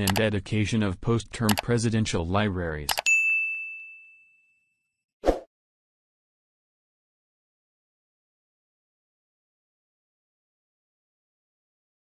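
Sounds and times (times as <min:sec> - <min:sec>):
notification bell ding: 0:03.0 - 0:04.7.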